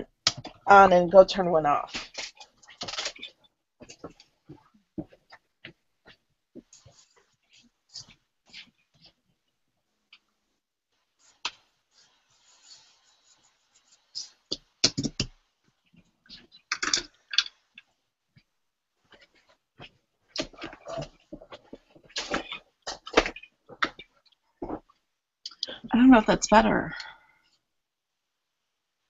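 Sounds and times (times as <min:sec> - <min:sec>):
clicks and taps of handling on desk: 0:14.5 - 0:15.4.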